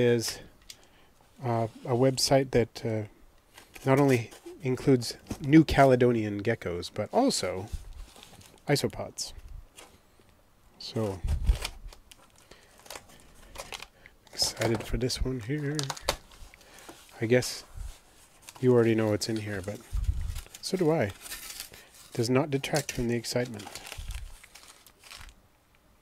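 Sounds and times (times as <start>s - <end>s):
plastic mailer crinkling: 10.8s - 25.4s
rustling of cardboard box: 14.4s - 25.4s.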